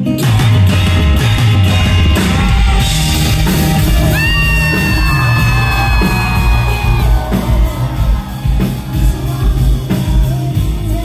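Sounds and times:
live pop-rock band: 0:00.0 - 0:11.0.

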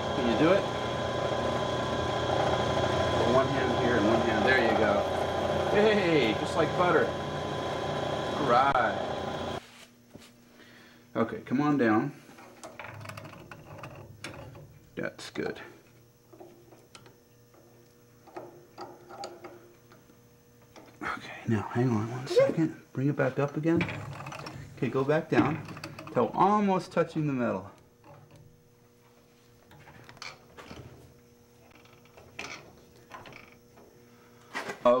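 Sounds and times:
drill press humming: 0:00.0 - 0:09.6.

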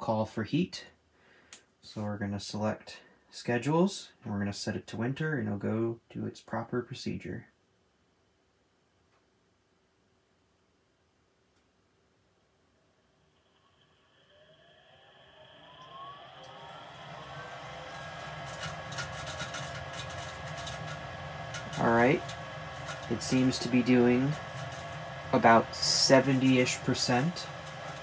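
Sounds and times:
furnace motor whining: 0:12.1 - 0:28.0.

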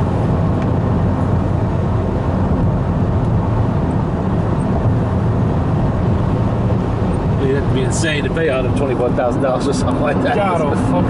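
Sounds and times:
car road noise inside cabin: 0:00.0 - 0:11.0
tyres and engine running: 0:00.0 - 0:11.0.

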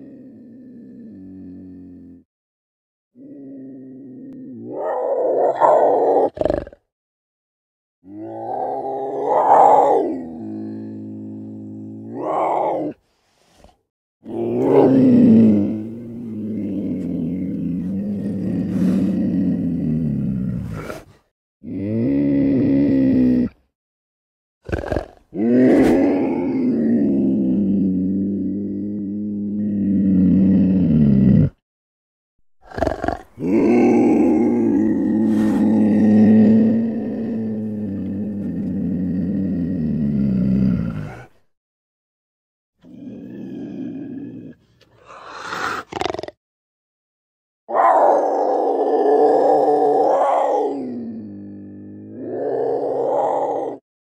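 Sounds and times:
brief snarls: 0:20.5 - 0:21.3, 0:24.7 - 0:26.4, 0:35.1 - 0:36.0, 0:44.8 - 0:46.4
low rumbling growls: 0:32.8 - 0:41.4.

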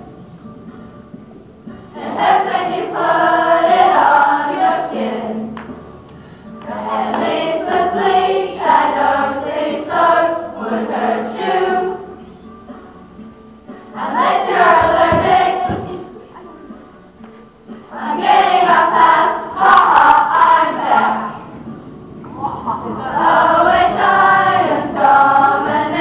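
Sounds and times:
young choir singing: 0:01.9 - 0:05.8, 0:06.5 - 0:12.4, 0:13.9 - 0:16.8, 0:17.8 - 0:26.0.

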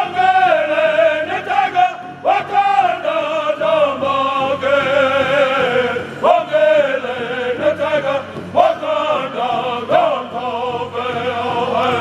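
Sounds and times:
group singing in high voices: 0:00.0 - 0:12.0
large hide drum beat: 0:00.0 - 0:12.0.

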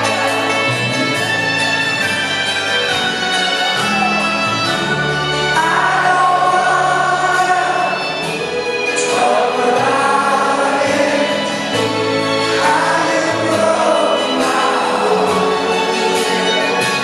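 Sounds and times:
strummed acoustic guitars: 0:00.0 - 0:17.0
upright double bass: 0:00.0 - 0:17.0
person singing: 0:03.7 - 0:17.0.

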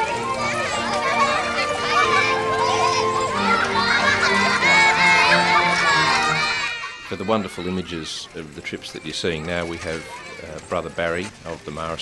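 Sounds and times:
children chattering and calling out: 0:00.0 - 0:12.0
music with held notes: 0:00.0 - 0:12.0.

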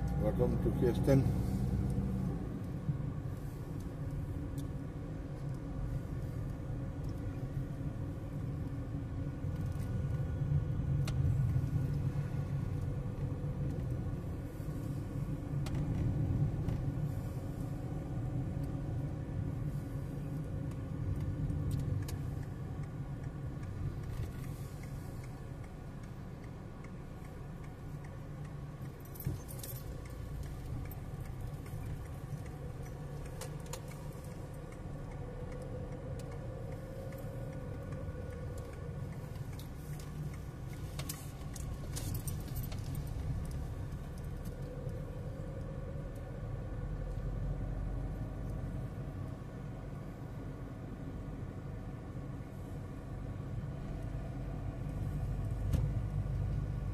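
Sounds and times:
engine and tyre rumble: 0:00.0 - 0:56.9
light rattles inside car: 0:00.0 - 0:56.9.

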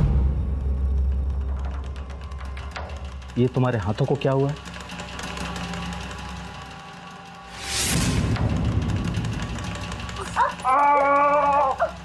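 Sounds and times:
low sustained drone: 0:05.1 - 0:12.0
whoosh: 0:07.5 - 0:08.9.

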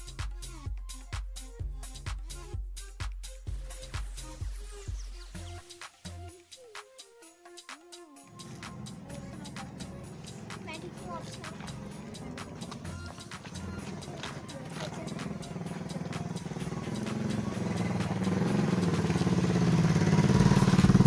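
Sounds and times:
motor vehicle engine approaching: 0:08.3 - 0:21.0.

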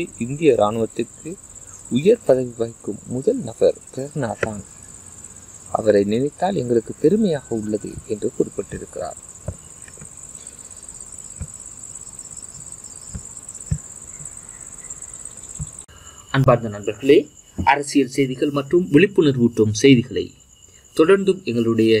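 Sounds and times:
person speaking: 0:00.0 - 0:04.7, 0:05.7 - 0:09.2, 0:16.3 - 0:20.3
steady high-pitched whine: 0:00.0 - 0:22.0.

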